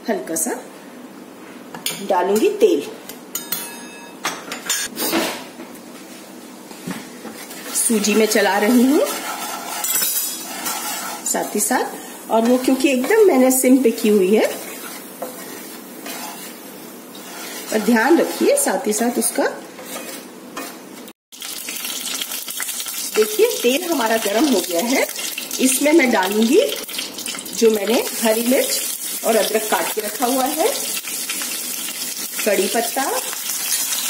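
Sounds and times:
utensils knocking against pans: 3.4s - 5.4s
spoon stirring dry semolina in pan: 7.3s - 20.8s.

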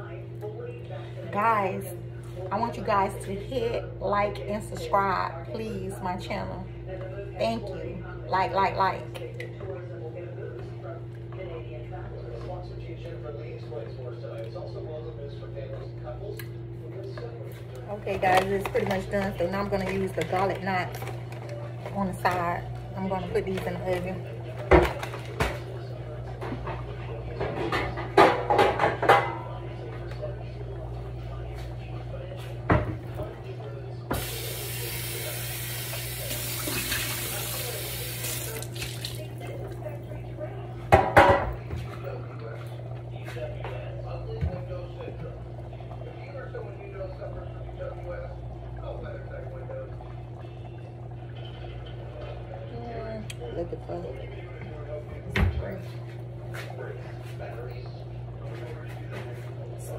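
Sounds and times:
tap running: 17.6s - 25.7s, 34.1s - 40.0s
pans and dishes clattering: 26.4s - 29.6s
steady low hum: 29.3s - 59.9s.

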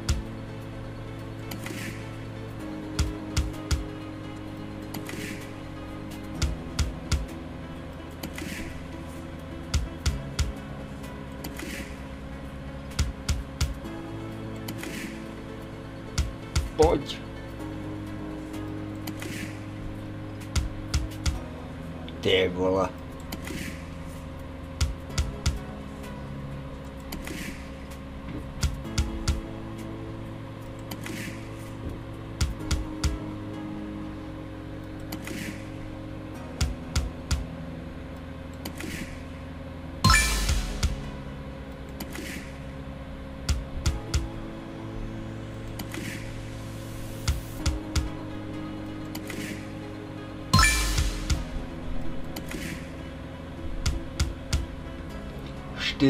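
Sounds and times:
loud slot machine burst: 40.0s - 41.1s, 50.5s - 51.4s.

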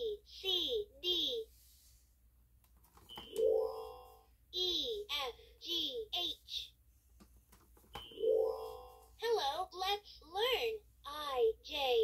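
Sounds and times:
toy electronic chime: 8.0s - 9.0s.

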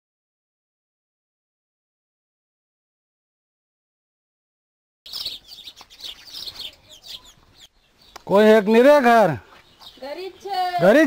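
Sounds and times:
birds chirping: 5.1s - 11.0s.

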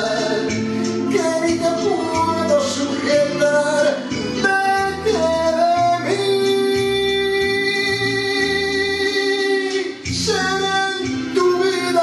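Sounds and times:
karaoke backing track: 0.0s - 12.0s
man singing into microphone: 0.0s - 12.0s.

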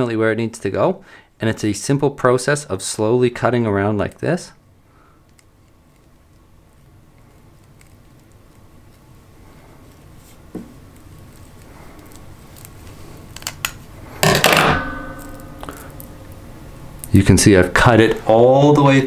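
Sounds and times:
scissors scraping cable: 5.3s - 9.1s.

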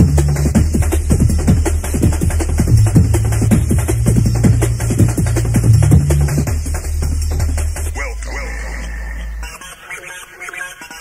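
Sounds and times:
sustained bass: 0.0s - 9.5s.

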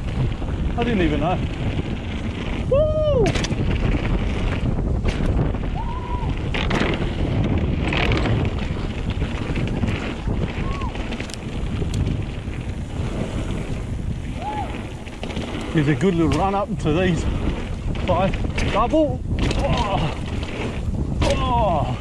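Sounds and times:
bike tyres rolling on dirt: 0.0s - 22.0s
wind buffeting microphone: 0.0s - 22.0s
bike knocking on boards: 3.2s - 5.6s, 14.6s - 16.6s, 17.9s - 20.5s
rider calling out: 21.2s - 22.0s.

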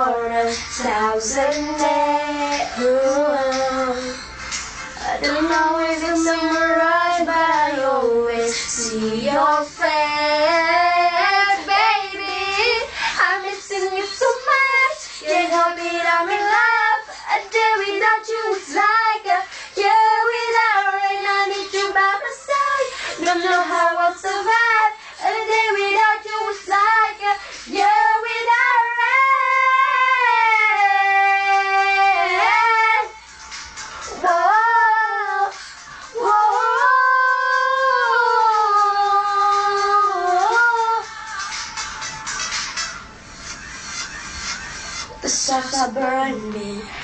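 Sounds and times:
young females singing pop melody: 0.0s - 43.1s, 45.0s - 47.0s.

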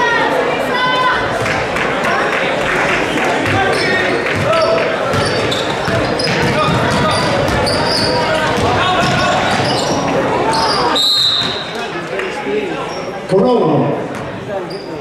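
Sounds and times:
chatter and shouts: 0.0s - 15.0s
sneaker squeaks: 3.6s - 11.8s, 14.1s - 15.0s
basketball dribbling on wooden floor: 4.4s - 9.8s.

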